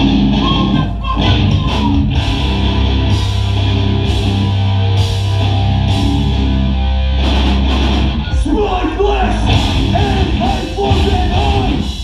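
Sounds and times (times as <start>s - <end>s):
distorted guitars and bass: 0.0s - 12.0s
drums with heavy cymbal hits: 1.2s - 12.0s.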